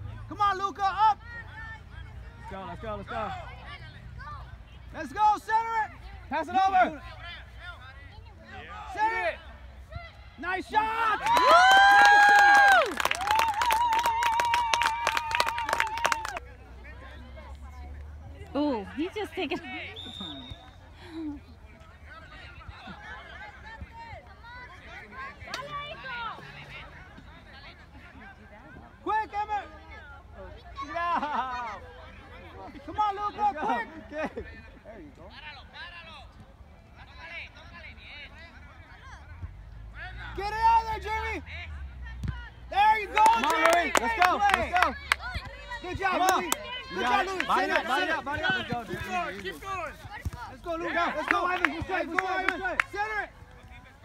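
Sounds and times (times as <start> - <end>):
faint crowd chatter: 0.0 - 54.0
spectators clapping: 11.1 - 16.4, 43.0 - 49.0, 51.0 - 53.2.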